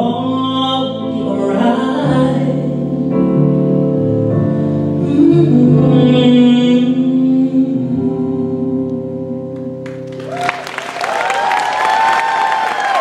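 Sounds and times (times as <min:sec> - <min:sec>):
audience applause and cheering: 0:09.8 - 0:13.0.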